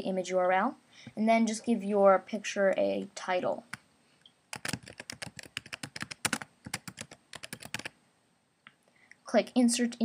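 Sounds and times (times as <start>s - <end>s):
typing on computer keyboard: 4.5s - 7.9s.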